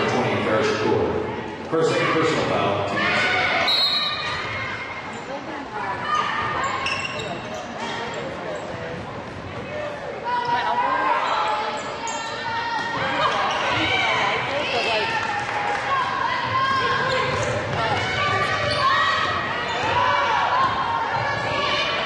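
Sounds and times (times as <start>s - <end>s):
voices echoing in a hall: 0.0s - 22.0s
sneaker squeaks: 6.0s - 9.6s, 10.3s - 14.2s, 16.6s - 21.8s.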